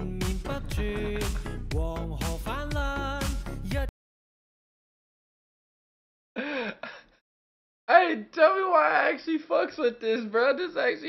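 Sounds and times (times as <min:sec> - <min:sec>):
man laughing: 0:00.8 - 0:01.7, 0:06.4 - 0:07.2
man talking: 0:07.9 - 0:11.0.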